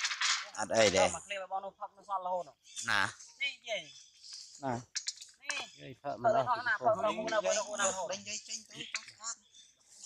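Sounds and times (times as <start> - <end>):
monkey vocal sounds: 2.6 - 3.3, 3.9 - 10.0.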